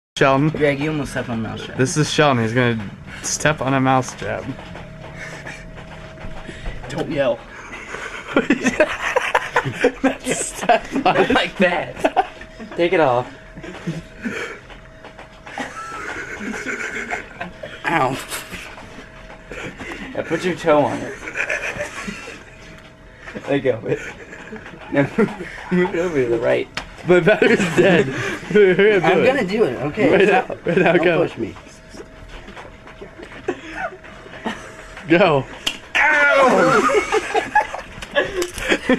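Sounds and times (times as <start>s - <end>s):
man squealing in pain: 35.9s - 37.0s.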